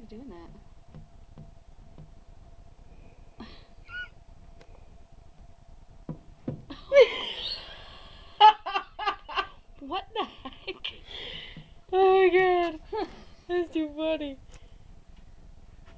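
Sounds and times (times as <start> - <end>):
faint steady hum: 0.0 - 15.9
woman laughing: 3.4 - 4.2, 6.7 - 11.0
soft taps: 6.1 - 6.7.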